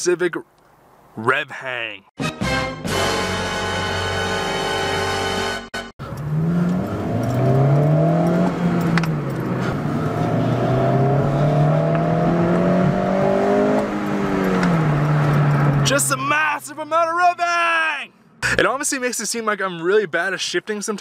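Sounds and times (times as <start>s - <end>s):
car engine accelerating through gears: 6.0s - 15.9s.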